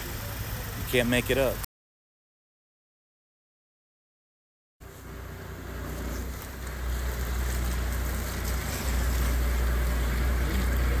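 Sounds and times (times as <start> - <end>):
boat engine rumble: 0.0 - 1.6, 4.8 - 11.0.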